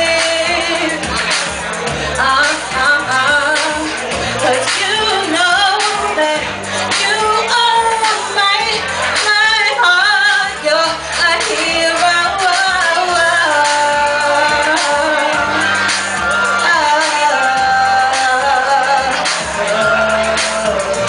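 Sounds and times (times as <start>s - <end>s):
musical accompaniment with bass: 0.0s - 21.0s
woman singing into microphone: 0.0s - 21.0s.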